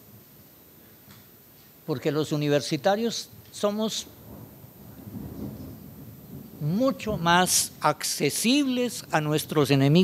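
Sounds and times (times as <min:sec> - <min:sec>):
faint low rumbling room noise: 0:00.0 - 0:10.0.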